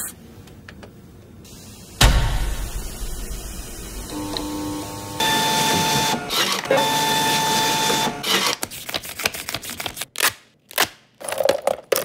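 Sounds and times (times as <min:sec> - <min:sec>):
ticket printer motor whine: 0:04.0 - 0:08.6.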